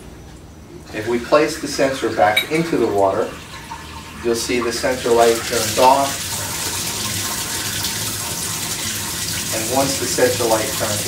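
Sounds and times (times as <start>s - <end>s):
water running through valve: 0.8s - 11.0s.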